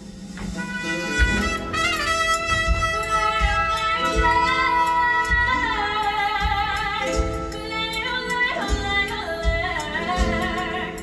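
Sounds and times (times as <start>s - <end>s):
live band playing: 0.0s - 11.0s
woman singing: 2.7s - 11.0s.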